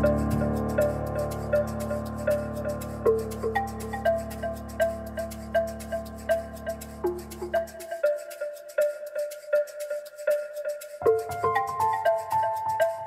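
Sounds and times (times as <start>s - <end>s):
repeating keyboard notes: 0.0s - 13.0s.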